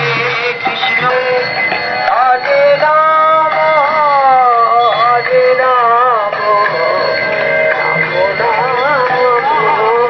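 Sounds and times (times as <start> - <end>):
musical accompaniment: 0.0 - 10.0.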